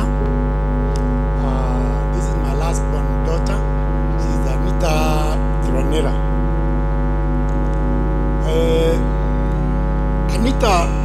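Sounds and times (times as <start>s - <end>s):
held vocal note: 0.0s - 11.0s
low hum: 0.0s - 11.0s
soft sustained chords: 0.0s - 11.0s.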